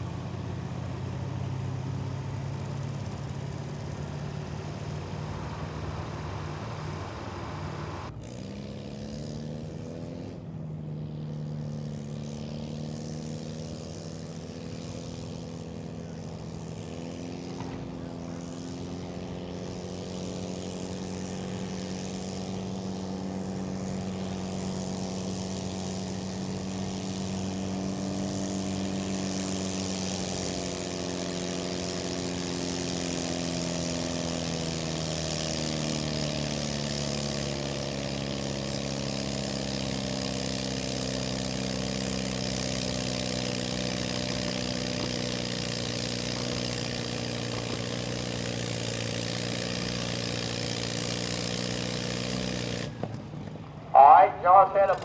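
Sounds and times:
tractor engine running under load: 0.0s - 55.0s.

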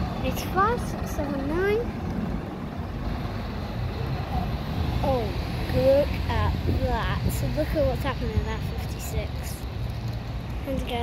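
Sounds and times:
bus engines running: 0.0s - 11.0s.

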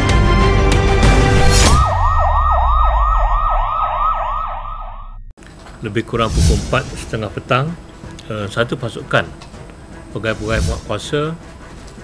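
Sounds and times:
siren wailing: 1.5s - 5.3s.

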